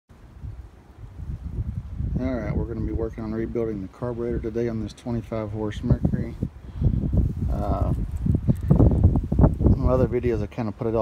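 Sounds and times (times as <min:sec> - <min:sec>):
wind buffeting microphone: 0:00.1 - 0:11.0.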